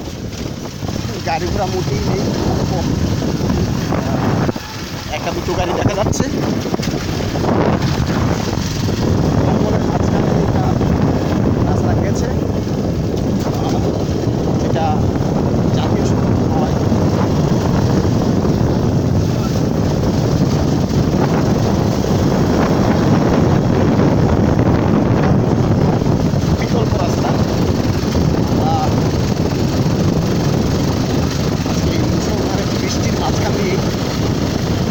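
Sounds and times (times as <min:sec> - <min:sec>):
motorcycle engine running: 0:00.0 - 0:34.9
wind rushing over microphone: 0:00.0 - 0:34.9.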